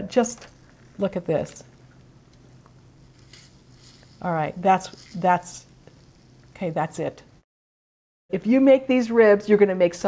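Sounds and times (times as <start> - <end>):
gloved hands squishing meat: 2.9 - 6.2.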